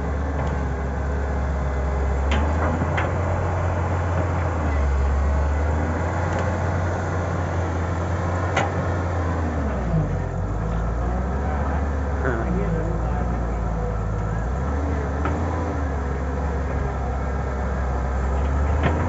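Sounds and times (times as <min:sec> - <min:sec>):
excavator diesel engine running: 0:00.0 - 0:19.0.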